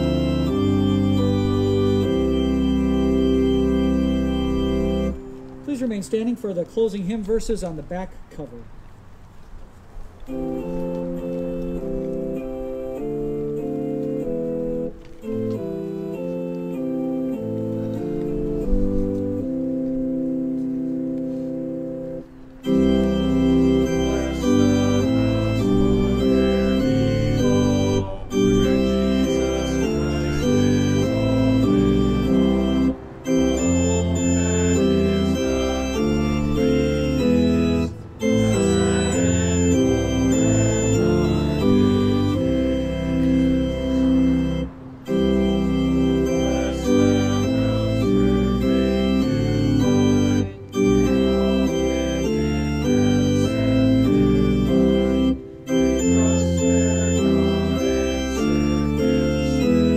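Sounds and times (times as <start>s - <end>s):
organ playing a hymn: 0.0s - 59.9s.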